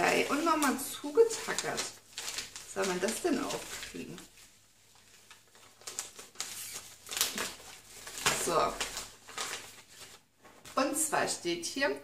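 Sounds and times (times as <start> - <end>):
paper envelope tearing: 0.3 - 4.3, 5.0 - 10.2.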